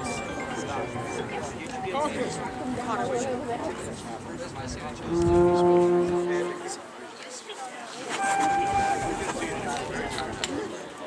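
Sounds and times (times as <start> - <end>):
higher held tone: 5.0 - 6.9, 8.2 - 9.7
low held horn-like note: 5.0 - 6.9, 8.2 - 9.7.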